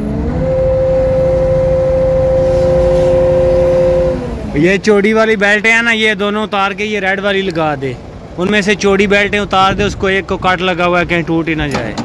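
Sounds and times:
diesel engine revving: 0.0 - 11.4.

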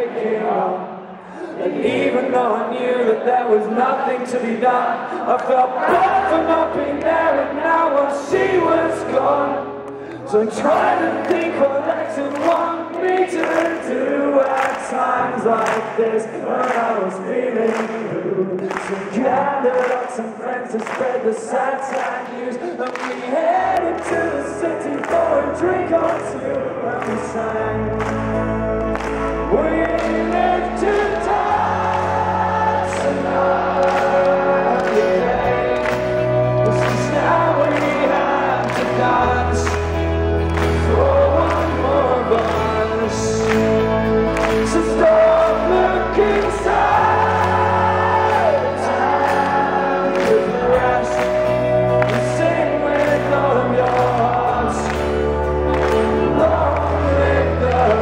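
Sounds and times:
crowd singing along: 0.0 - 58.0
live folk-rock band playing: 23.6 - 58.0.

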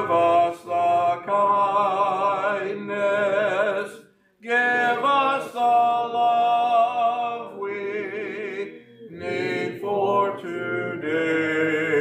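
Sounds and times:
man singing a hymn: 0.0 - 12.0.

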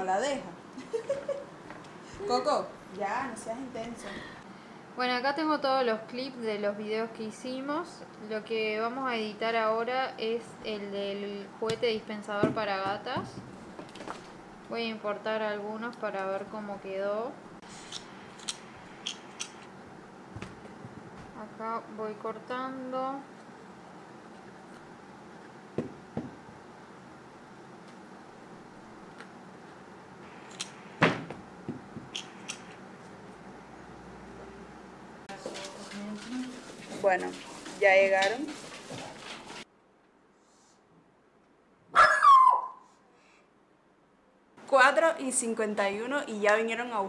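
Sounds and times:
dog barking: 41.9 - 42.8.

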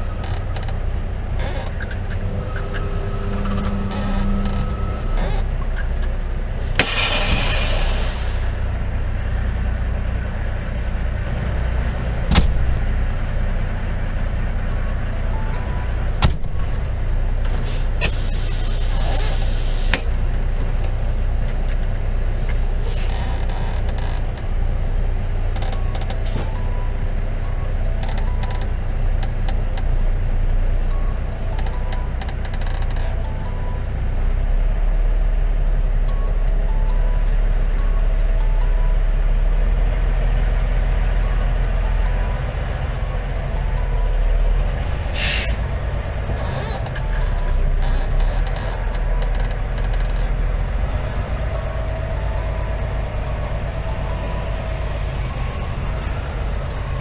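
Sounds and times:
diesel truck engine running: 0.0 - 57.0
air brakes hissing: 6.6 - 8.8, 17.6 - 20.1, 22.2 - 23.2, 45.1 - 45.7.

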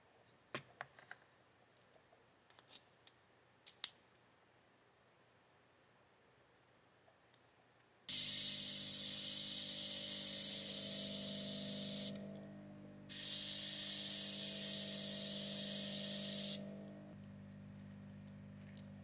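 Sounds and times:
airbrush air hissing: 8.1 - 12.2, 13.1 - 16.7
steady low hum: 8.1 - 19.0.

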